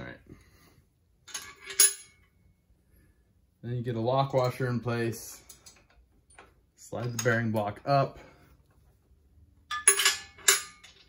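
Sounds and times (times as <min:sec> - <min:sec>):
metal hardware clinking: 0:01.3 - 0:02.3, 0:09.6 - 0:11.0.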